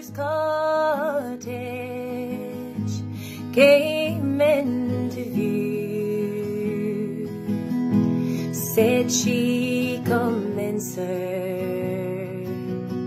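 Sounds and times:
acoustic guitar chords: 0.0 - 13.0
woman singing a slow ballad: 0.0 - 13.0.

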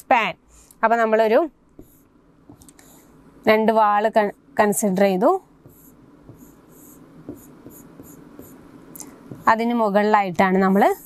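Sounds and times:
pen scratching on whiteboard: 1.8 - 3.0, 5.6 - 8.7, 9.3 - 9.8, 10.4 - 11.0.

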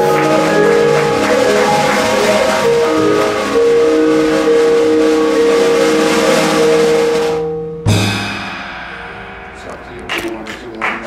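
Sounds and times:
vibraphone: 0.0 - 9.4
drum kit cymbals: 0.0 - 10.8.

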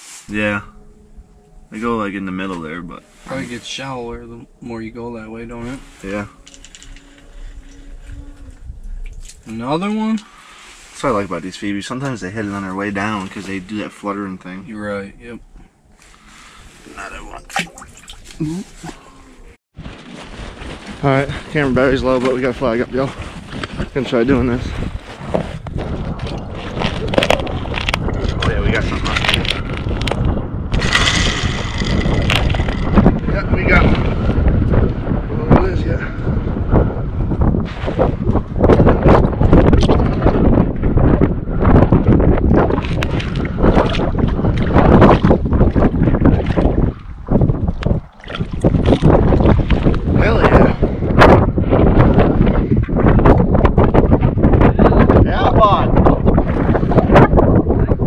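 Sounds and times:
strong wind buffeting microphone: 0.0 - 58.0.

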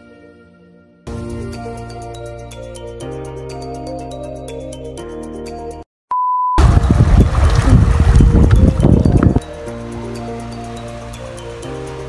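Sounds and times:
background music: 0.0 - 5.8, 6.8 - 12.0
short steady beep: 6.1 - 6.6
wind and waves on microphone: 6.6 - 10.1.

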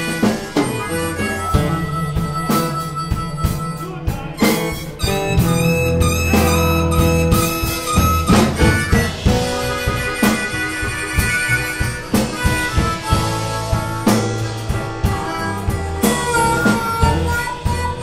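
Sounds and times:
drum kit: 0.0 - 18.0
electric bass: 0.0 - 18.0
harmonica playing: 0.0 - 18.0.

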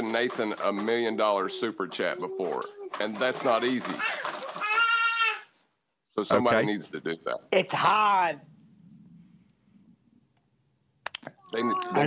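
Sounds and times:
man speaking: 0.0 - 4.1, 6.1 - 8.5, 11.4 - 12.0.

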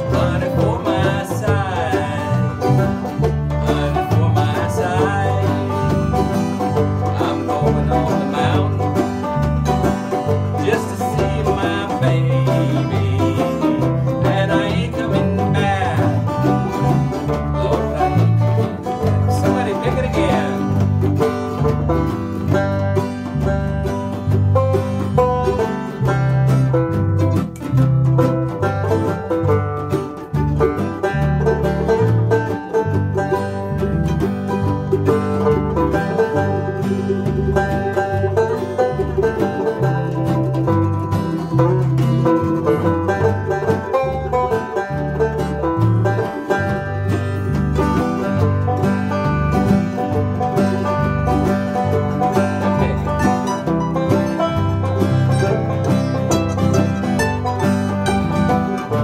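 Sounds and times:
acoustic guitar: 0.0 - 59.0
banjo: 0.0 - 59.0
mandolin: 0.0 - 59.0.

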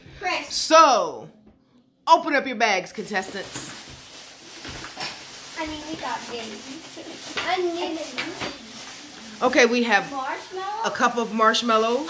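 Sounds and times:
plastic bags rustling: 2.8 - 12.0
items knocking and clattering: 3.1 - 9.9.

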